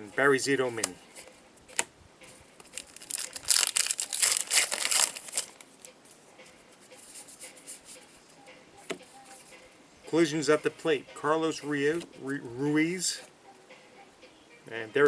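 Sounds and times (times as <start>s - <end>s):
cards shuffled: 2.6s - 5.7s
wrapper tearing and crinkling: 2.6s - 5.7s.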